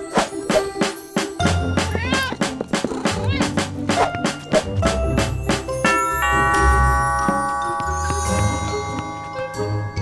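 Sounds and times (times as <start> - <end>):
background music with drum beat: 0.2 - 5.9.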